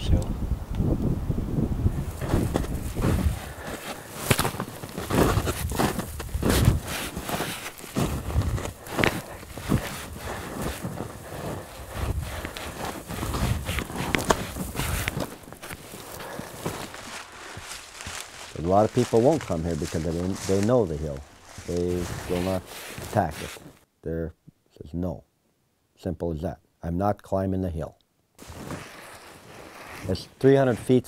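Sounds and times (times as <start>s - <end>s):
footsteps crunching in snow: 1.9s - 23.8s, 28.4s - 31.0s.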